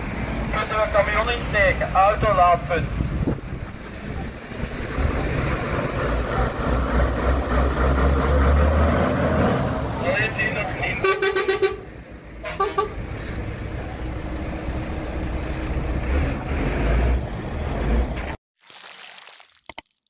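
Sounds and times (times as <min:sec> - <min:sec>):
truck diesel engine rumbling: 0:00.0 - 0:18.4
truck horn blasts: 0:10.9 - 0:13.1.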